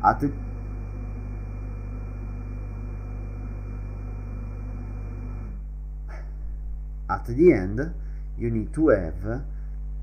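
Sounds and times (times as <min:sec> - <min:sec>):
faint high whine: 0:00.0 - 0:10.0
steady low hum: 0:00.0 - 0:10.0.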